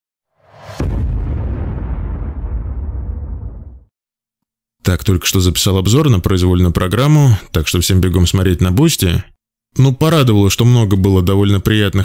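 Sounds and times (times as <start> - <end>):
cinematic boom: 0.4 - 3.9.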